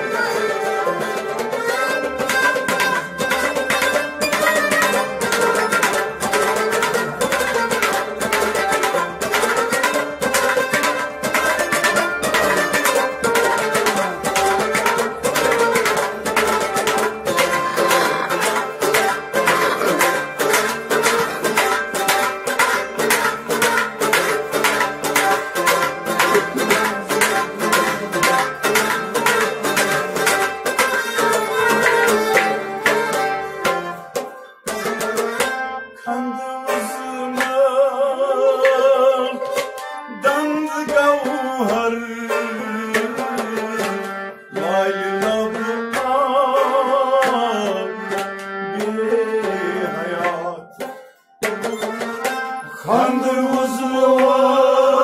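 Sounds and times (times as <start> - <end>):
bowed string instrument: 0.0 - 55.0
harmonium: 0.0 - 55.0
plucked string instrument: 0.0 - 55.0
clay pot drum struck by hand: 2.2 - 34.3.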